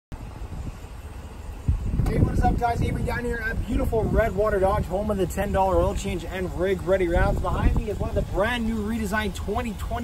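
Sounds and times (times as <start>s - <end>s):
wind buffeting microphone: 0.2s - 10.0s.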